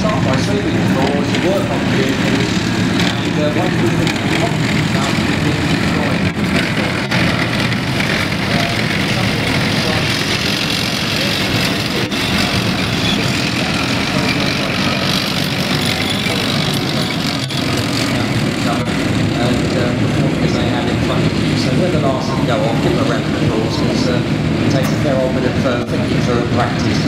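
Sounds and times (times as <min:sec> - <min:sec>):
tracked vehicles driving past: 0:00.0 - 0:27.0.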